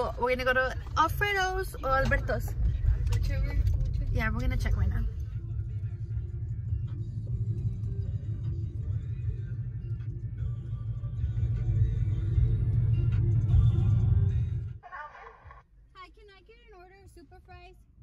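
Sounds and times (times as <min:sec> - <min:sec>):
road rumble inside car: 0:00.0 - 0:18.0
music playing: 0:00.8 - 0:14.8.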